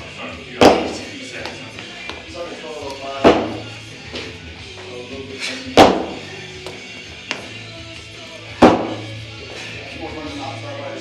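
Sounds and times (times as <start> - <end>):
background music: 0.0 - 11.0
feet landing on wooden box: 5.8 - 6.2, 8.6 - 9.0.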